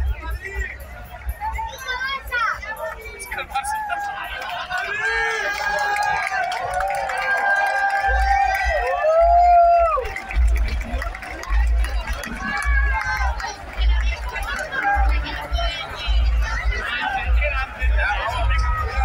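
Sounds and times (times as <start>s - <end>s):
crowd shouting: 1.3s - 19.0s.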